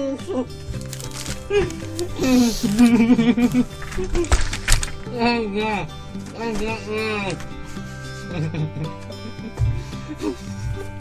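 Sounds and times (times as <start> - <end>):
muffled laughing: 1.5 - 4.6, 8.2 - 11.0.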